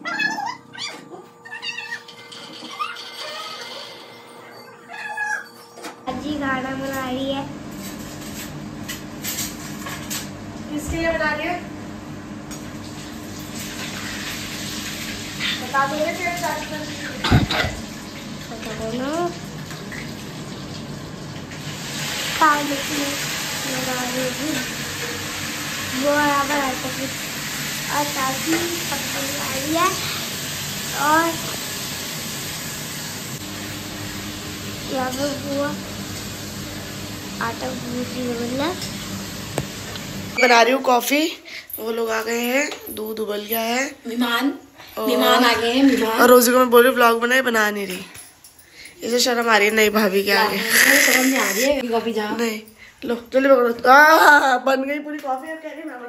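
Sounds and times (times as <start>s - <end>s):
cat meowing: 0.0s - 2.1s, 4.8s - 5.6s
food sizzling in frying pan: 12.4s - 40.8s, 50.6s - 51.8s
person speaking: 50.1s - 52.4s.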